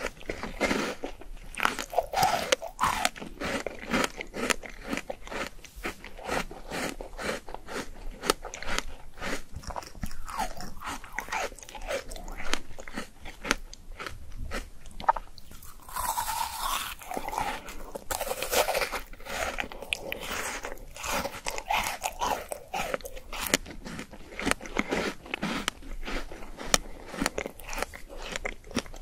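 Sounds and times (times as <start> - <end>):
chewing with crunches: 0.0 - 29.0
crunchy bite into frozen fruit: 0.0 - 29.0.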